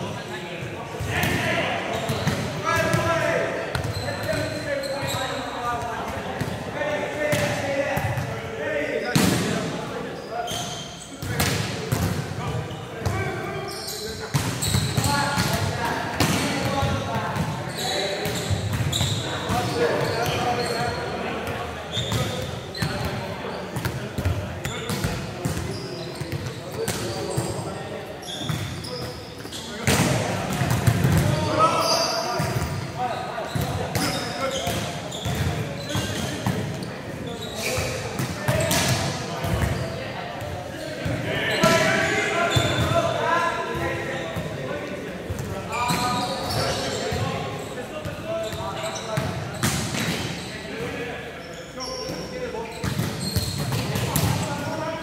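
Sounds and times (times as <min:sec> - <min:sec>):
players talking and calling out: 0:00.0 - 0:55.0.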